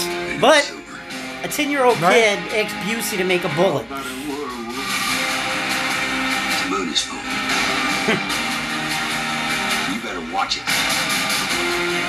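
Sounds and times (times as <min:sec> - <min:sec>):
trailer music with long held notes: 0:00.0 - 0:12.0.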